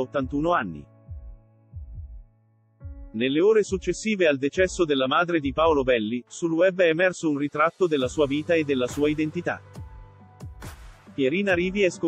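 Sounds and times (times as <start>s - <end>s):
deep bass thumps falling in pitch: 0.3s - 3.2s.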